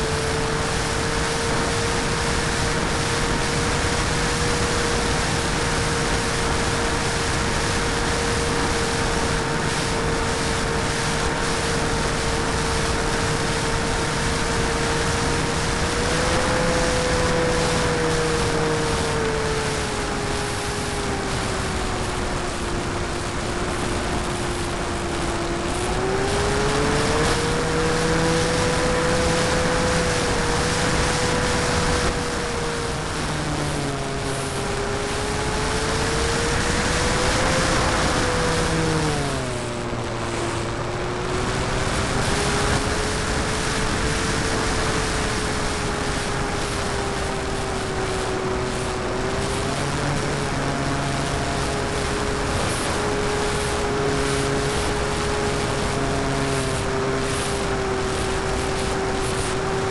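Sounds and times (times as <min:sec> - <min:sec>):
electric motor and propeller whining: 0:00.0 - 0:59.9
wind rushing on microphone: 0:00.0 - 0:59.9.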